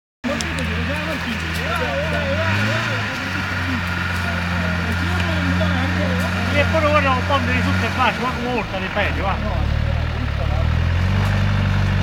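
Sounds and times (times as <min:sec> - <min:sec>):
off-road vehicle engine running: 0:00.2 - 0:12.0
people talking: 0:00.2 - 0:12.0.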